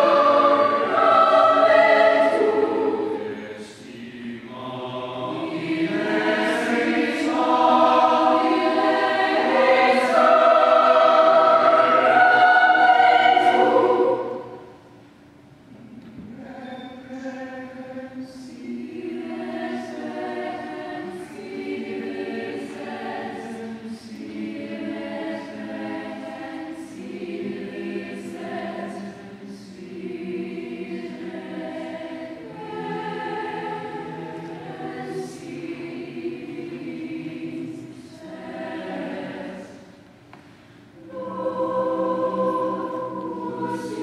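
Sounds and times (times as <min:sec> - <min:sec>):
mixed choir singing: 0:00.0 - 0:15.0, 0:16.2 - 0:44.0.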